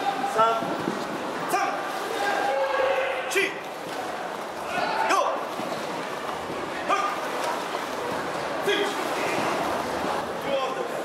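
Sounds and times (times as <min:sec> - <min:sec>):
background murmur: 0:00.0 - 0:11.0
voices echoing in a hall: 0:00.0 - 0:11.0.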